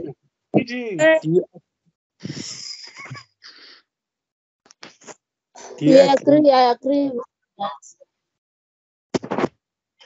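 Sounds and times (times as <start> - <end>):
faint voice: 0.0 - 1.5, 2.2 - 3.7, 4.8 - 6.5
breathy microphone hiss: 2.2 - 3.8, 4.8 - 7.9.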